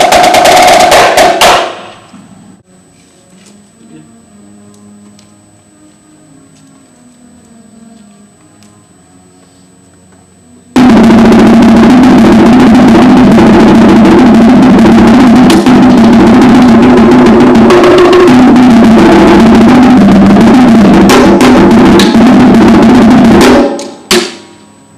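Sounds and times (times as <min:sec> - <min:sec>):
marching tenor drums: 0:00.0 - 0:01.9, 0:10.8 - 0:24.2.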